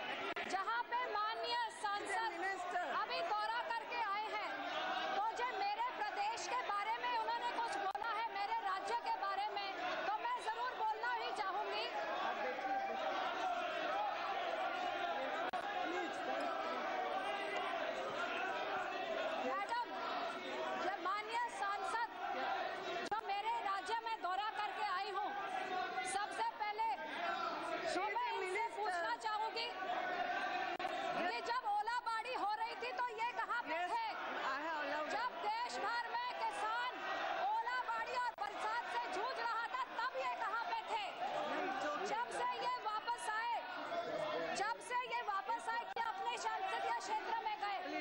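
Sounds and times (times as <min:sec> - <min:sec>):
babble of overlapping voices: 0:00.0 - 0:48.0.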